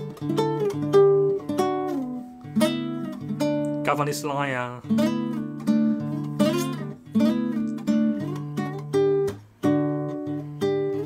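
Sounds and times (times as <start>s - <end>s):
classical guitar fingerstyle solo: 0.0s - 11.0s.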